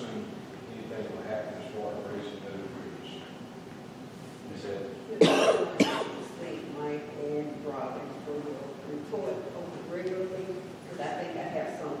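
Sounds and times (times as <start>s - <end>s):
person coughing: 5.2s - 6.2s.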